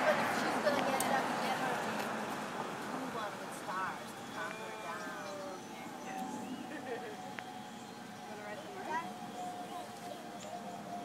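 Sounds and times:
people talking: 0:00.0 - 0:07.3, 0:08.2 - 0:11.0
background noise: 0:00.0 - 0:11.0.

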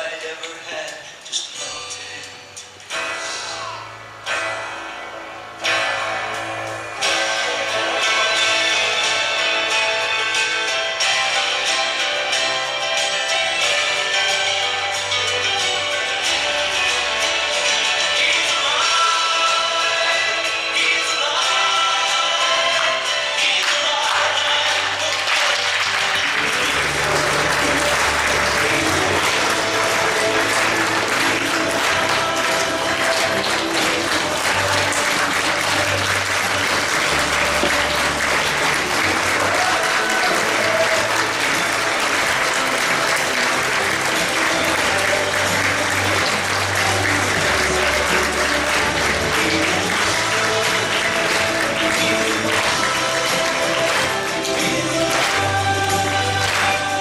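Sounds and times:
audience clapping: 0:21.4 - 0:57.0.

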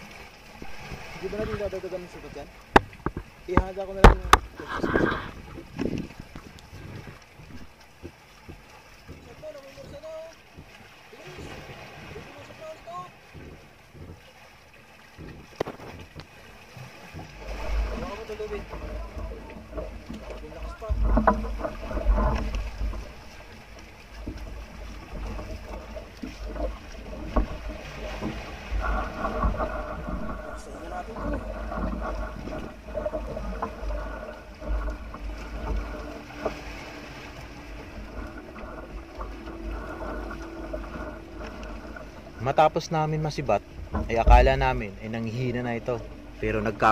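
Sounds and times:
low wind rumble: 0:00.0 - 0:14.4, 0:15.0 - 0:46.9
boat engine running: 0:00.0 - 0:46.9
open sea: 0:00.0 - 0:46.9
wind on microphone: 0:02.8 - 0:07.8, 0:17.0 - 0:46.9.

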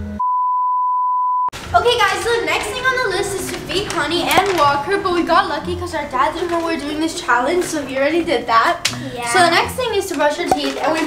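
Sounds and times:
censor bleep: 0:00.1 - 0:01.5.

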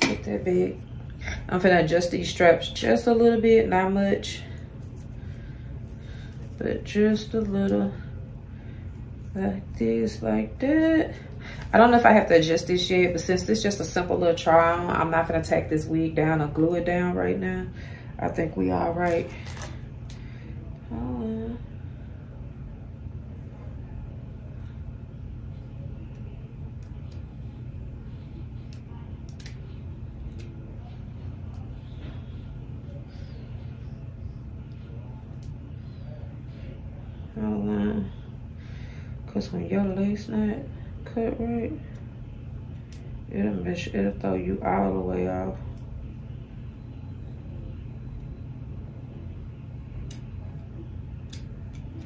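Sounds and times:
low background rumble: 0:00.0 - 0:52.0
scissors snipping: 0:28.7 - 0:29.6.

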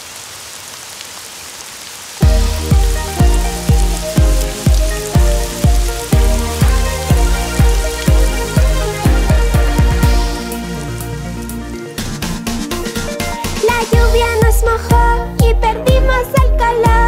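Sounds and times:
rain hiss: 0:00.0 - 0:14.9
music with steady beat: 0:02.2 - 0:17.0.

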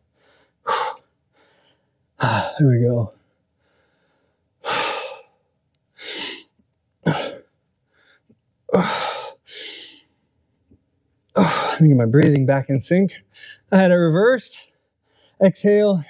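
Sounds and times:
man breathing hard: 0:00.0 - 0:10.1
man speaking: 0:02.2 - 0:03.1, 0:11.4 - 0:14.6, 0:15.4 - 0:16.0.

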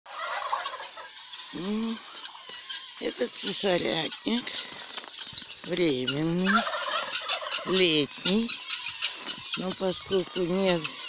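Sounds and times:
guineafowl harsh cries: 0:00.1 - 0:11.0.

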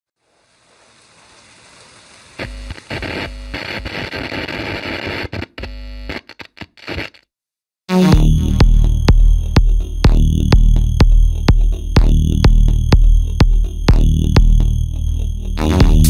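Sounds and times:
techno beat: 0:07.9 - 0:16.0
loud noise over low bass: 0:08.2 - 0:16.0.

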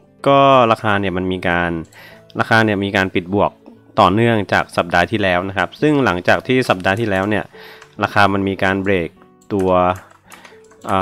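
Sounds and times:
soft background music: 0:00.0 - 0:11.0
computer keyboard clicking: 0:06.7 - 0:11.0.

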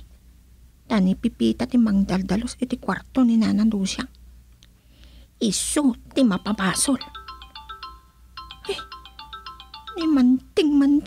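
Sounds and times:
mobile phone ringtone: 0:06.3 - 0:10.4.

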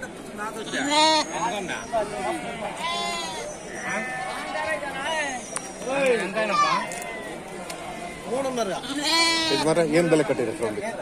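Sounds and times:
sheep bleating: 0:00.6 - 0:01.4, 0:02.2 - 0:04.7, 0:08.8 - 0:09.8.

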